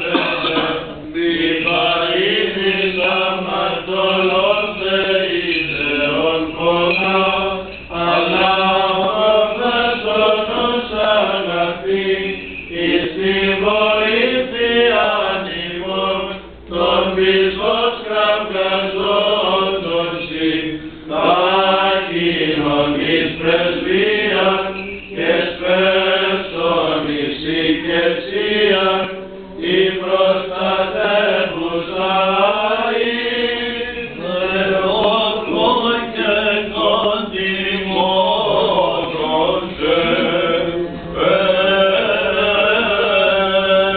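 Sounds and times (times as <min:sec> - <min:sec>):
voices singing ornamented chant: 0:00.0 - 0:43.9.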